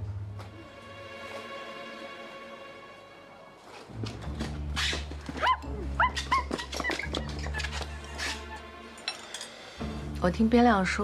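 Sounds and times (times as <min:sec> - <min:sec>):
high whimpering yelps: 0:05.4 - 0:07.7.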